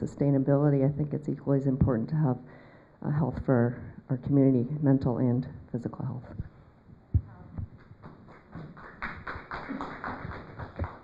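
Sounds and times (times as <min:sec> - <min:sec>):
microphone handling noise: 0:06.3 - 0:08.0.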